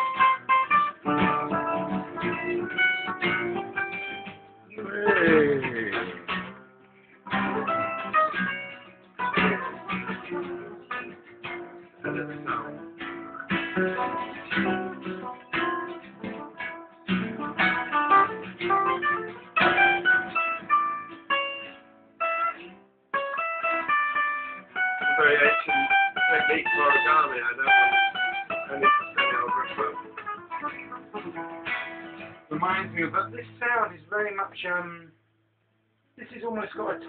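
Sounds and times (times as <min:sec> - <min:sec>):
acoustic guitar chords and notes: 0:00.0 - 0:37.0.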